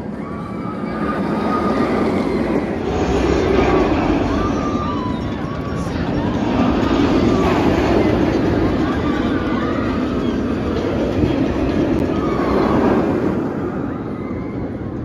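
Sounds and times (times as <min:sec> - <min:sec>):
voices: 0:00.0 - 0:14.8
roller coaster train rumbling: 0:00.0 - 0:15.0.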